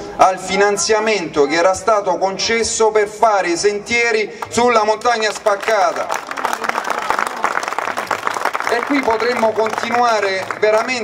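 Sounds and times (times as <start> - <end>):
crowd applauding: 4.5 - 11.0.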